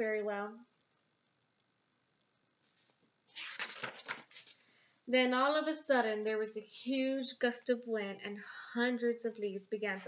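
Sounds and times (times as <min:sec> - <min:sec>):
book page turning rustle: 0:02.6 - 0:04.6.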